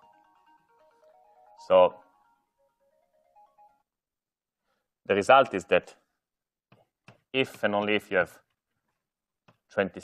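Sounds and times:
faint electronic tone melody: 0:00.0 - 0:04.2.

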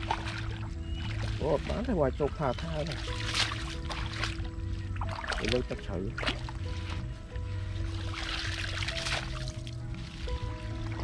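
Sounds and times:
background music with held tones: 0:00.0 - 0:11.0
water splashing and sloshing: 0:00.0 - 0:11.0.

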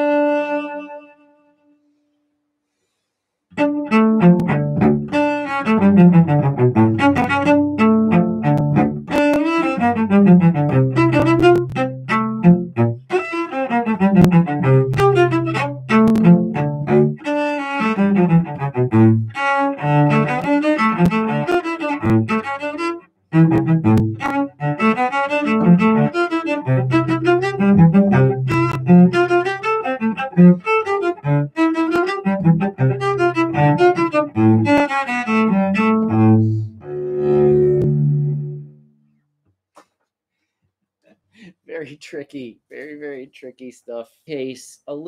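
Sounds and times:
solo cello bowed: 0:00.0 - 0:02.0, 0:03.5 - 0:38.9.

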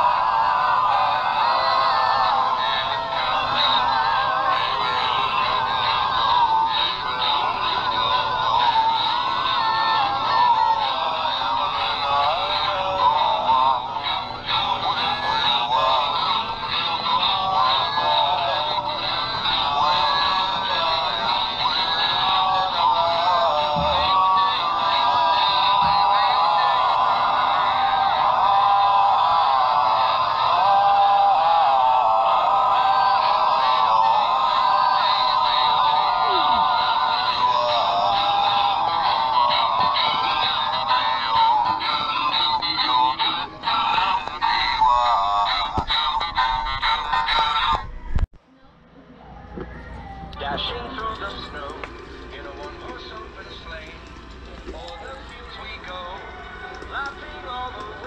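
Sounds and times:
toy singing through small speaker: 0:00.0 - 0:47.9.

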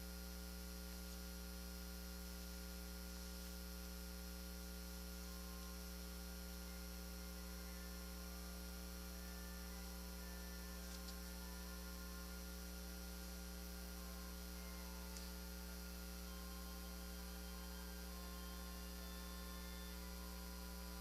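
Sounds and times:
faint mains hum: 0:00.0 - 0:21.0
small clicks: 0:10.8 - 0:11.3.

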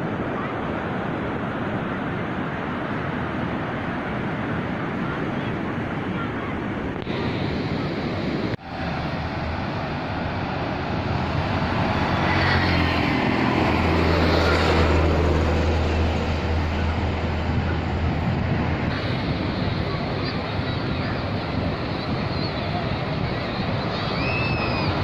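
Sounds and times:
breaking surf: 0:00.0 - 0:25.0
wind on microphone: 0:00.0 - 0:25.0
motor vehicle passing: 0:08.6 - 0:20.4.

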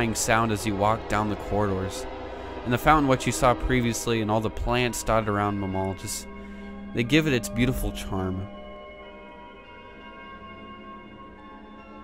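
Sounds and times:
soft background music chords: 0:00.0 - 0:12.0.

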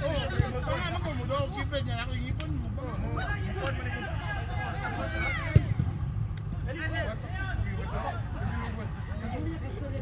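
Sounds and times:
players shouting: 0:00.0 - 0:09.8.

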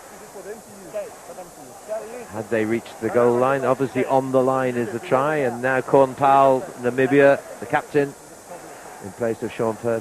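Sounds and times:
faint indistinct voices: 0:00.0 - 0:10.0
steady background hiss: 0:00.0 - 0:10.0.

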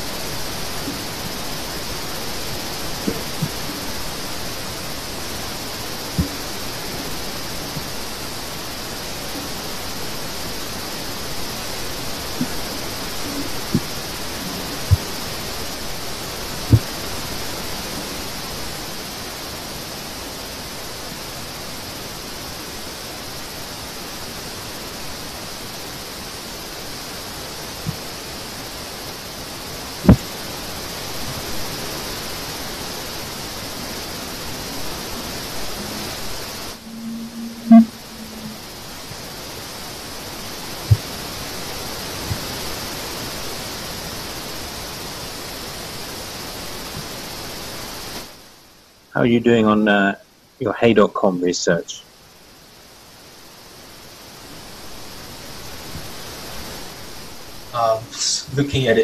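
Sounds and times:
electric fan hissing: 0:00.0 - 0:50.6, 0:52.0 - 0:59.0.

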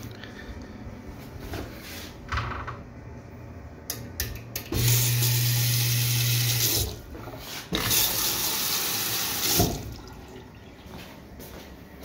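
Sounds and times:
faucet water running into steel sink: 0:04.8 - 0:07.0, 0:07.8 - 0:10.5.

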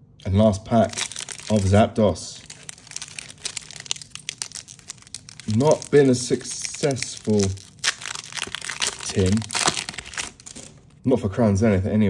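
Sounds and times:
foil wrapper crinkling: 0:00.7 - 0:11.0.

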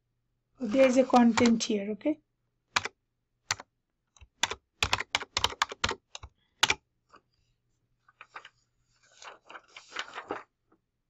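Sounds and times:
computer keyboard key clicks: 0:04.2 - 0:06.8.

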